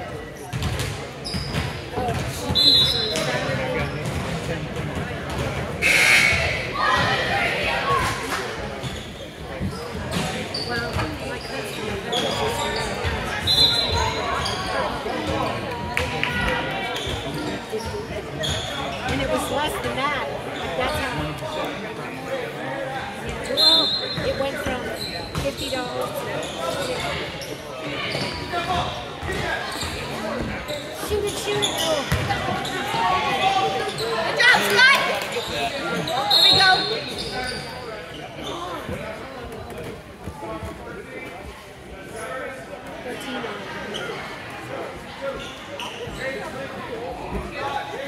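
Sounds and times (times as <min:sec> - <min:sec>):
chatter of voices: 0:00.0 - 0:48.0
basketball bouncing on gym floor: 0:00.5 - 0:02.4, 0:32.1 - 0:32.3.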